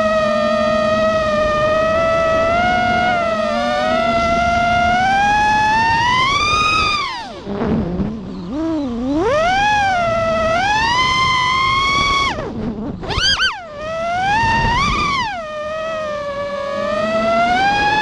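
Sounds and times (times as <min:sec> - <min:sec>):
drone motors whining: 0:00.0 - 0:18.0.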